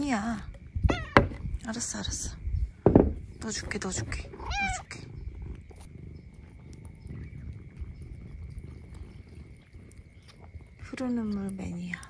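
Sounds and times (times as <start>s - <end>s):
cat licking its paw: 5.4s - 11.6s.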